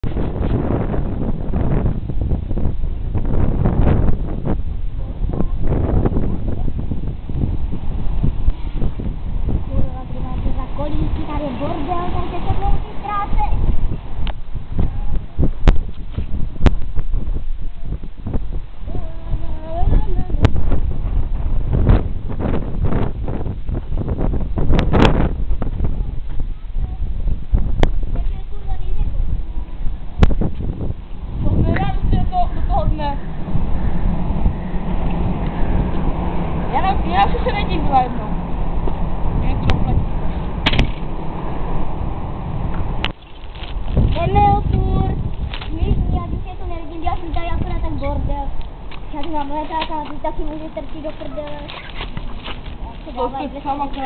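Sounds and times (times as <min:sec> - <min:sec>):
wind buffeting microphone: 0:00.0 - 0:54.0
short rustles: 0:51.0 - 0:53.3.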